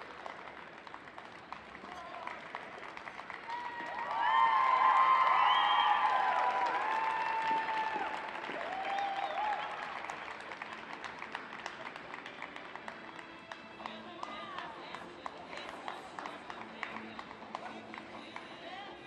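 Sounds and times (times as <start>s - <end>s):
audience applauding: 0.0s - 18.8s.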